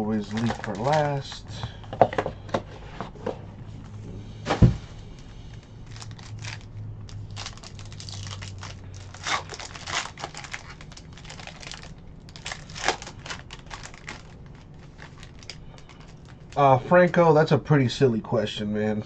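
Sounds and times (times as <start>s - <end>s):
foil wrapper crinkling and tearing: 0.1s - 1.4s, 5.2s - 16.6s.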